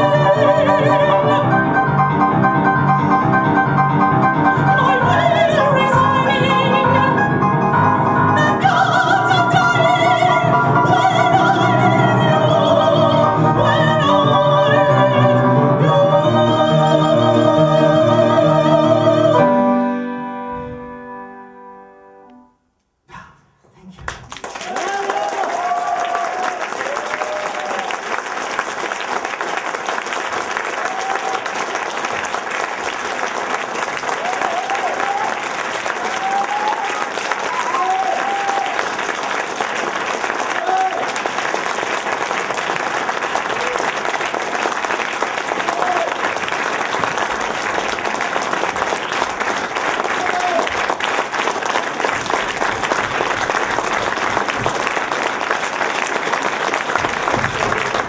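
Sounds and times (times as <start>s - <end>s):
audience applauding: 24.0s - 58.0s
crowd shouts and whoops: 24.6s - 27.9s, 34.2s - 35.4s, 36.0s - 38.8s.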